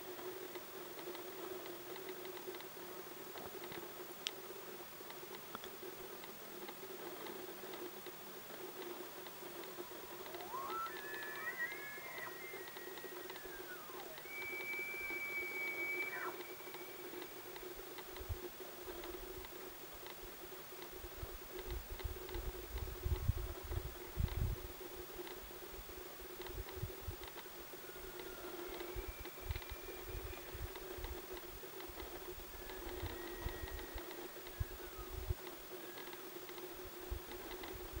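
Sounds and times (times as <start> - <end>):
faint clicks: 0.2 - 23.3, 26.3 - 38.0
small clicks: 5.1 - 18.3
steady low hum: 7.9 - 20.6
elk bugling whistle: 9.6 - 17.9, 27.8 - 30.9, 32.5 - 35.2.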